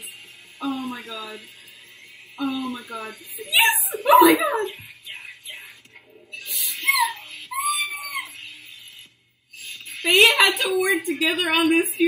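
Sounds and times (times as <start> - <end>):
woman squealing excitedly: 6.6 - 8.4.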